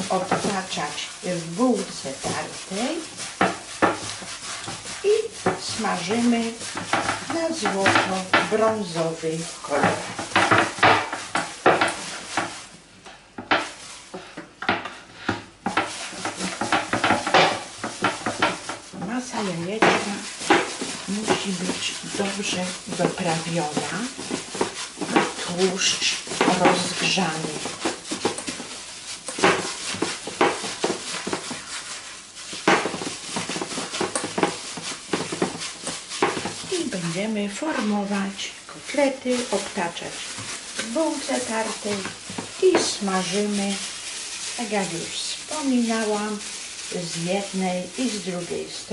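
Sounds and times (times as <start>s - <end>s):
hand brushing glass bowl: 0.0s - 12.7s, 13.5s - 14.2s, 15.6s - 48.9s
plastic glove crinkling: 0.0s - 48.9s
squishing food mixture: 0.0s - 48.9s.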